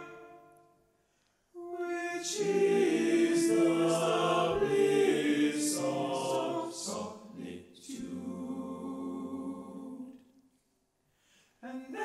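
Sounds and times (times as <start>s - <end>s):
male choir singing: 1.6s - 10.2s.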